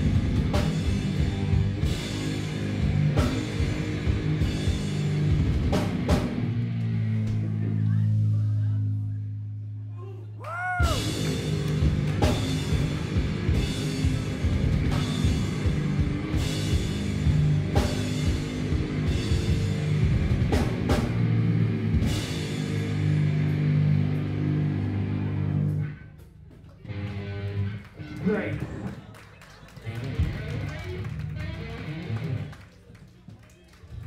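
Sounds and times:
heavy rock band playing: 0.0 - 8.3, 10.8 - 28.9, 29.8 - 32.6.

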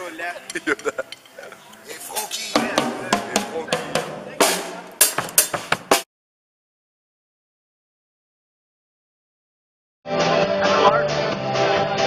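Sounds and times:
voices: 0.0 - 5.0
drum kit playing: 2.0 - 6.1.

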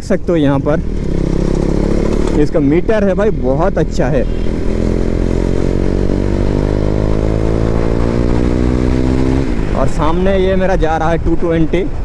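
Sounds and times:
motorcycle engine accelerating: 0.2 - 10.4.

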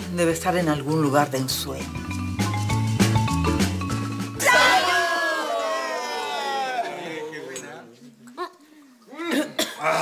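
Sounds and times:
people coughing: 9.1 - 10.0.

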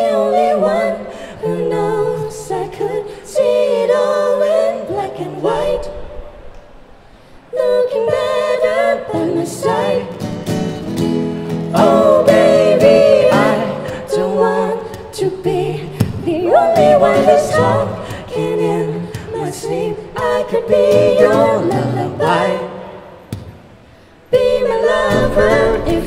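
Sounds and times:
acoustic guitar: 8.1 - 26.0
woman singing: 11.8 - 22.6, 24.3 - 26.0.

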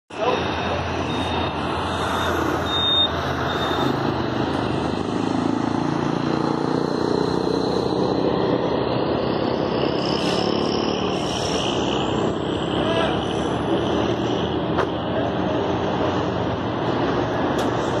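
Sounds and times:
heavy truck engine drone: 0.1 - 18.0
highway traffic passing: 0.1 - 18.0.

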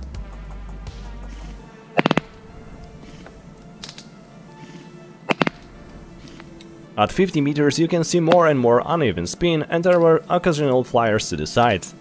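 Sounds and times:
background music: 0.0 - 12.0
airsoft gun firing: 2.0 - 2.5, 5.3 - 5.7.

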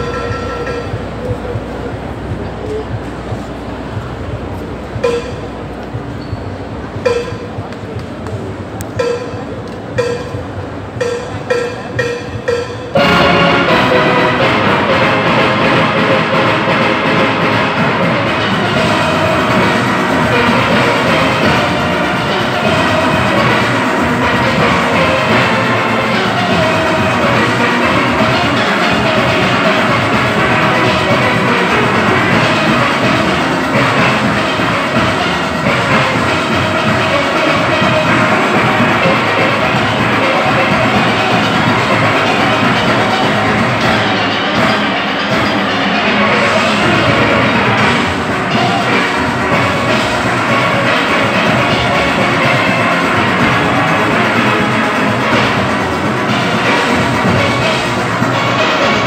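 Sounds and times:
drums and percussion: 0.0 - 59.0.

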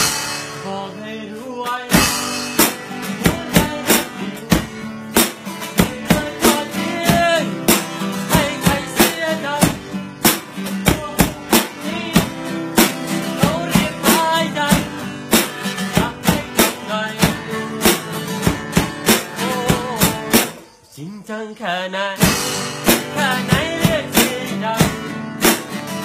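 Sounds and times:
drum and cymbal hits: 0.0 - 0.8, 1.9 - 20.7, 22.2 - 26.0
strummed acoustic guitar: 0.0 - 26.0.

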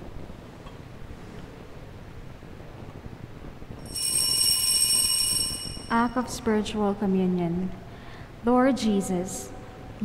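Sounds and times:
steady high ringing tone: 3.7 - 7.7.

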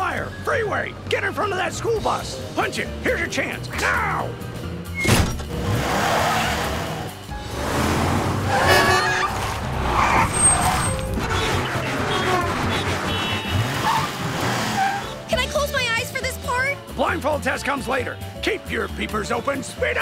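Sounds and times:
background music: 0.0 - 20.0
traffic noise: 4.4 - 16.9
car engine revving: 5.3 - 15.4.

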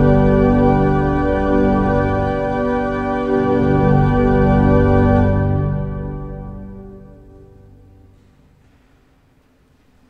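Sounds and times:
pipe organ chords: 0.0 - 8.3.

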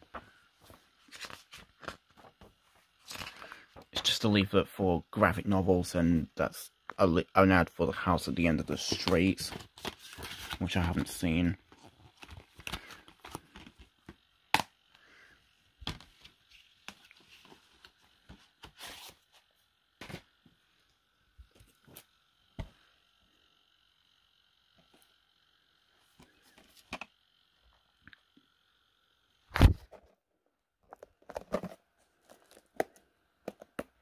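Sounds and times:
plastic cases clicking and knocking: 30.9 - 34.0.

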